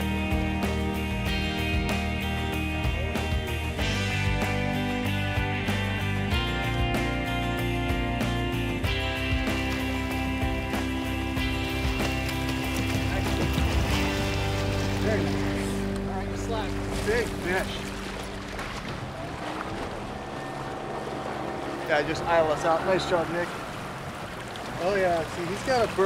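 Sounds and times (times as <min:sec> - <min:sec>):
background music held notes: 0:00.0 - 0:19.1
wind: 0:00.0 - 0:26.0
water splashing against boat: 0:08.9 - 0:26.0.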